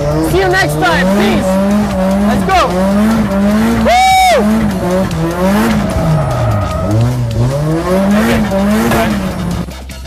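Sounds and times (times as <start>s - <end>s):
tyres skidding and squealing: 0.0s - 9.9s
car engine revving: 0.0s - 10.0s.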